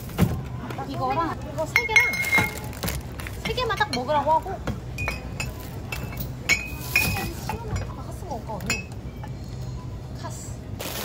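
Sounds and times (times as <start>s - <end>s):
glass bottles clinking: 1.7s - 4.3s, 4.9s - 8.0s, 8.6s - 9.4s.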